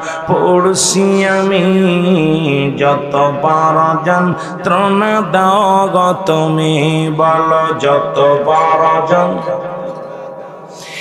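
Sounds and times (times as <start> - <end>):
man chanting through microphones: 0.0 - 9.9, 10.7 - 11.0.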